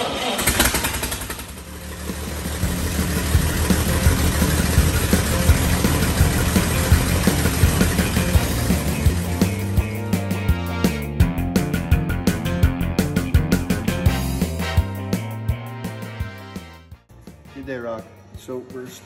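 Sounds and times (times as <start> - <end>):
engine running unevenly: 0.0 - 10.4
rock music: 1.9 - 19.0.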